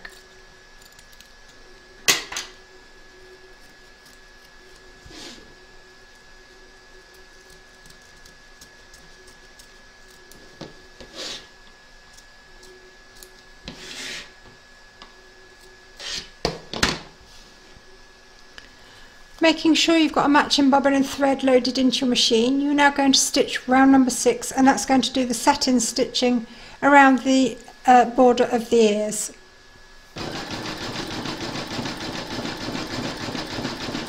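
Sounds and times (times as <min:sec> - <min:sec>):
scissors snipping fabric: 0:00.0 - 0:01.6, 0:07.4 - 0:10.4.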